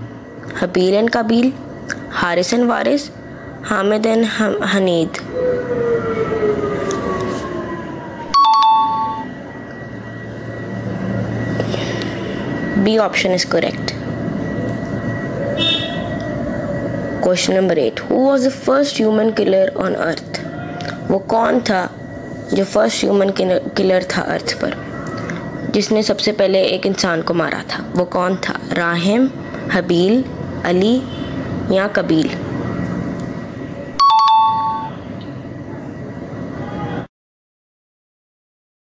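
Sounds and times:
high ringing tone: 8.0s - 26.9s, 33.6s - 35.2s
two-note ding-dong chime: 8.4s - 9.3s, 34.0s - 34.9s.

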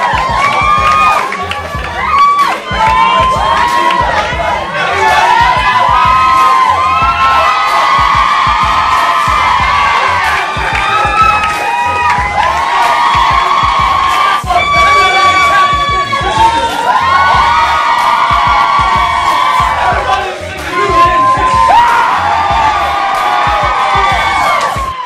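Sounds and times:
crowd of women screaming: 0.0s - 25.0s
thumping music: 0.0s - 25.0s.

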